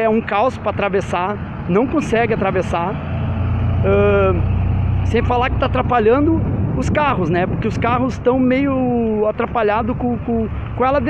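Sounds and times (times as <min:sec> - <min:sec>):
passing vehicle engine rumble: 0:00.0 - 0:11.0.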